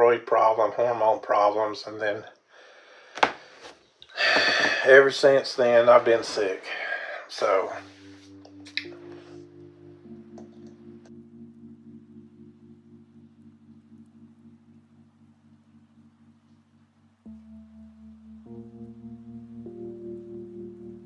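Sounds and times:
soft sustained chords: 5.0 - 21.0.

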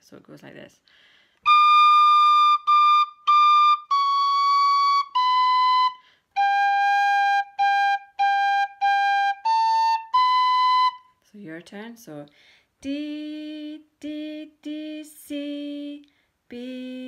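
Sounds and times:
tin whistle playing a reel: 1.5 - 11.0.

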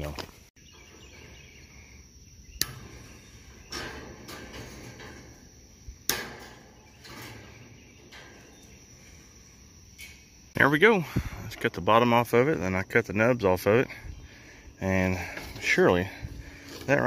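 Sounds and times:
insect chirping: 0.0 - 17.0
wire cutters snipping wire: 2.6 - 3.0, 6.0 - 7.4.

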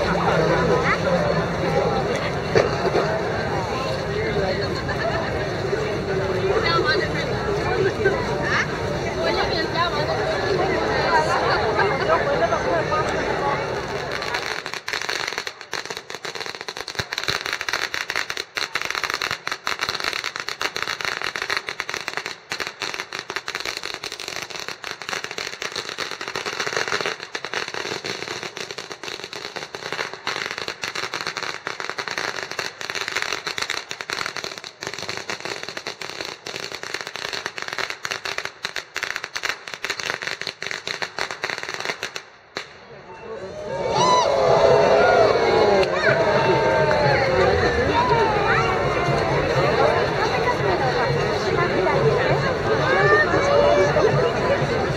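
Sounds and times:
firecrackers crackling: 0.0 - 43.0, 44.5 - 54.9.

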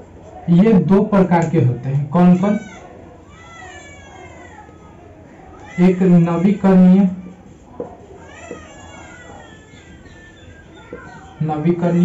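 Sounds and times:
whiteboard marker squeaking: 7.8 - 12.0.

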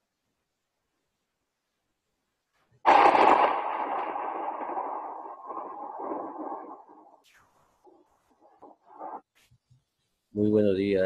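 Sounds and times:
loud hit with lingering tail: 2.9 - 7.0.

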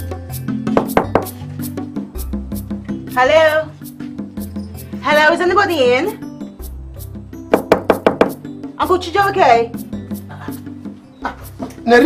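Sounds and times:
background music: 0.0 - 12.0
knocks on wooden door: 0.8 - 1.3, 7.5 - 8.4.

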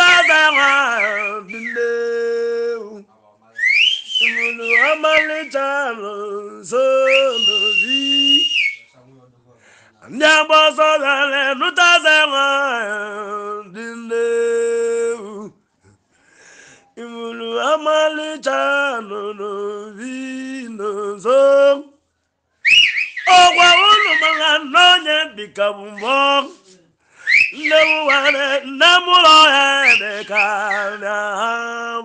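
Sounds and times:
high wavering whistle: 0.0 - 2.1, 3.6 - 5.7, 7.0 - 8.9, 22.6 - 24.8, 26.0 - 26.4, 27.2 - 31.1
high whistle note: 3.6 - 5.4, 22.6 - 24.6, 27.2 - 28.4, 29.7 - 31.0
man singing held note: 23.3 - 25.1, 25.8 - 31.2.

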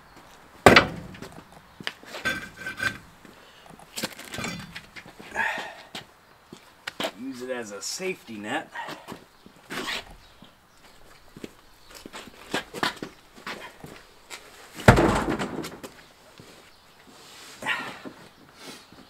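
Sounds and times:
truck wheel thudding on concrete: 0.6 - 1.6, 4.0 - 5.0, 14.7 - 16.1.

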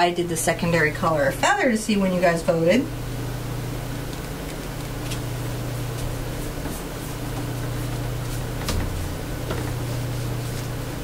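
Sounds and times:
low room hum: 0.0 - 11.0
paintbrush working paint: 5.7 - 11.0.

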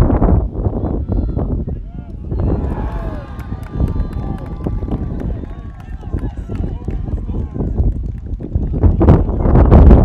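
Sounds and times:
wind rumble on microphone: 0.0 - 10.0
players shouting: 0.9 - 7.8.

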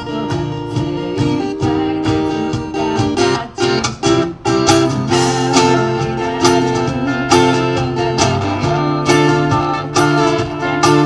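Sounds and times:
acoustic guitar strumming chords: 0.0 - 11.0
cajon beat: 0.0 - 11.0
electric guitar lines: 0.0 - 11.0.

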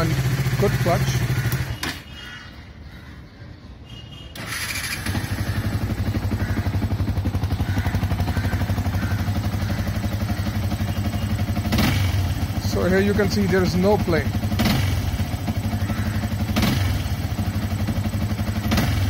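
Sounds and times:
motorcycle engine idling: 0.0 - 2.4, 4.4 - 19.0.

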